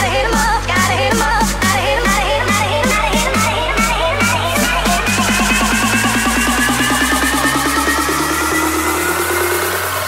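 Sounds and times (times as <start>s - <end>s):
sped-up electronic dance music: 0.0s - 10.0s.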